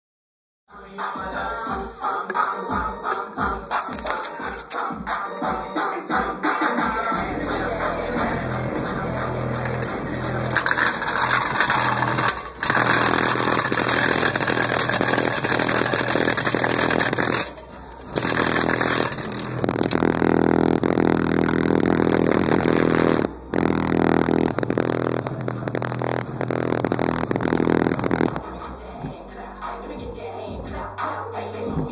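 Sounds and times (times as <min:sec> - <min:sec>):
distorted bass-heavy music: 0:02.6 - 0:31.9.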